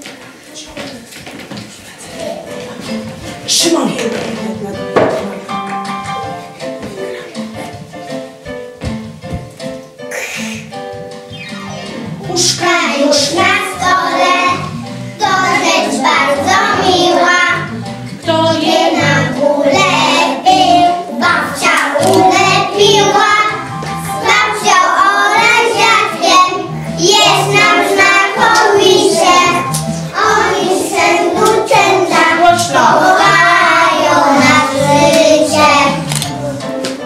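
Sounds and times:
children singing: 12.2 - 36.8.

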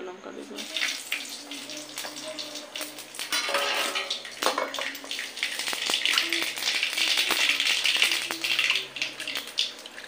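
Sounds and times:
steel bowls clinking and scraping: 3.2 - 4.9.

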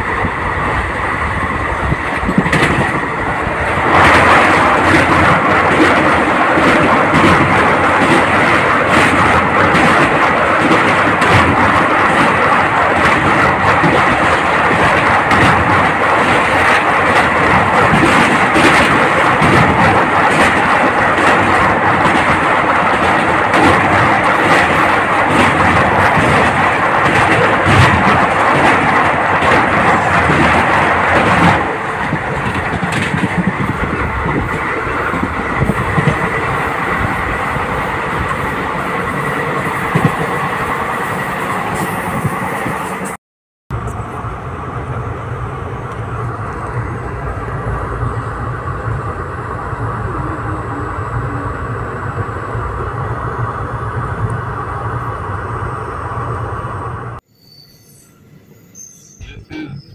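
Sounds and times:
train rumbling over bridge: 0.0 - 57.2.

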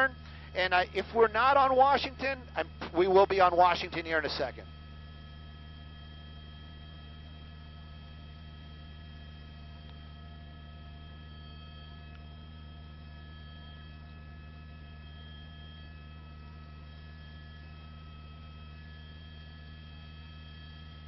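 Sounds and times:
low hum: 0.0 - 21.0.

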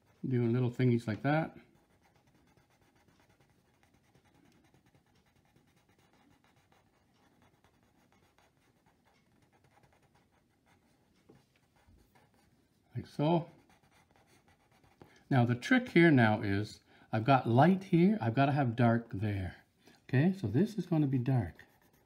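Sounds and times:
pencil scratching on paper: 0.0 - 15.2, 20.6 - 22.0.

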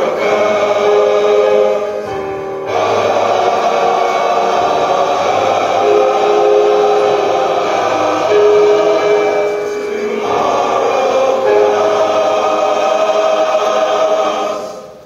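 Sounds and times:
male choir singing chords: 0.0 - 15.0.

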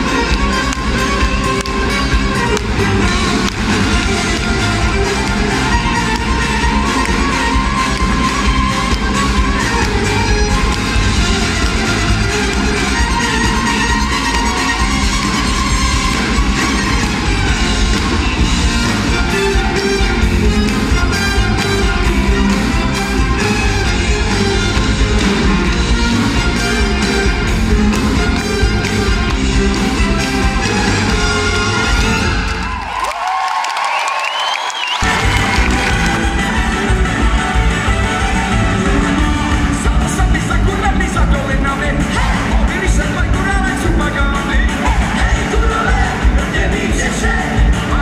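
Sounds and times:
live band playing amplified music: 0.0 - 32.8, 34.9 - 48.0.

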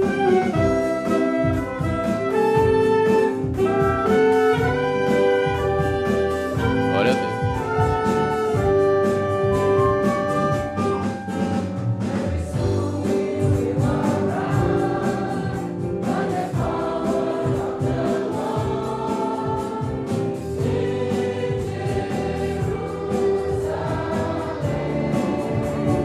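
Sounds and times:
choir singing a hymn: 0.0 - 26.0
instrumental accompaniment: 0.0 - 26.0
steady beat: 0.0 - 26.0.

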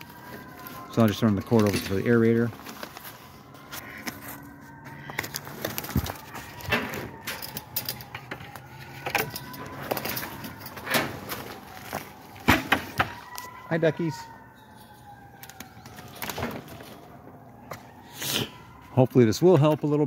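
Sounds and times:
sharp clicks and rustles: 0.0 - 13.6, 15.1 - 17.9.

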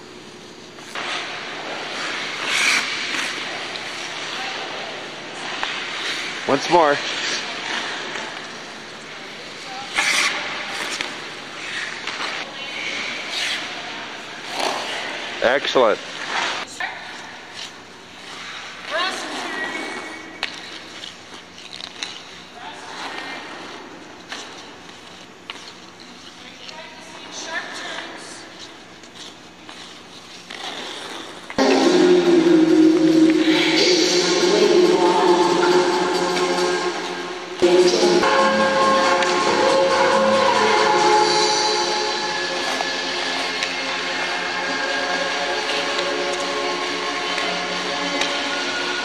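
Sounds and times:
skate blades scraping ice: 0.8 - 15.4, 16.0 - 16.8, 17.4 - 31.6, 40.5 - 49.0
skate scrapes on ice: 0.9 - 4.8, 9.8 - 12.4, 29.1 - 31.6
skate blades carving ice: 0.9 - 6.4, 9.8 - 12.4, 28.6 - 31.6
loud music: 31.6 - 49.0.

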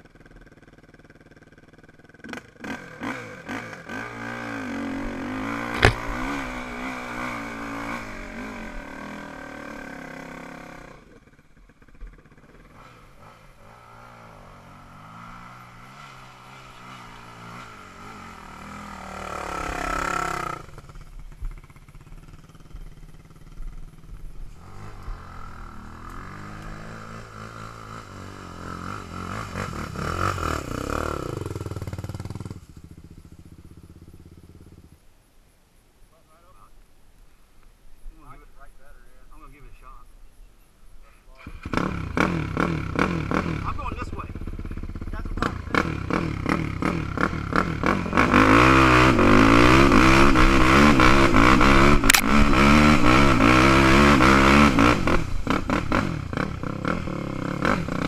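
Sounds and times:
atv engines revving: 0.0 - 34.9, 41.3 - 58.0
sharp knock: 5.7 - 6.4.

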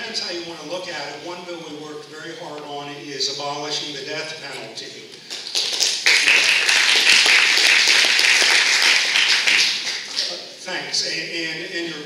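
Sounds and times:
audience applauding: 5.3 - 10.3.

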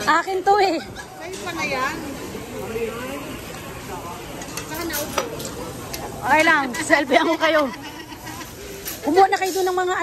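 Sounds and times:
meat sizzling on a grill: 1.3 - 10.0.

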